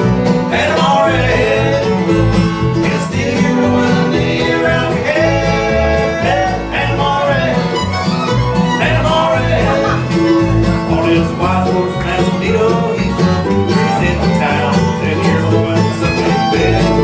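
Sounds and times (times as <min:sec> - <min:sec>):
bluegrass band playing: 0:00.0 - 0:17.0
upright bass notes: 0:00.0 - 0:17.0.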